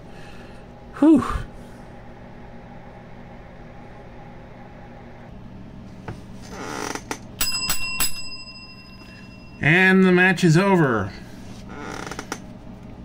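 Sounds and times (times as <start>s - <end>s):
low hum: 0.0s - 13.0s
small bell ringing: 7.4s - 10.0s.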